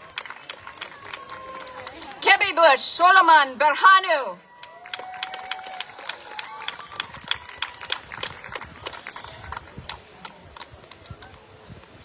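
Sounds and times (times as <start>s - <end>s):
audience clapping: 0.0s - 2.2s, 4.5s - 11.4s
faint cheering voices: 0.0s - 2.2s, 4.4s - 11.9s.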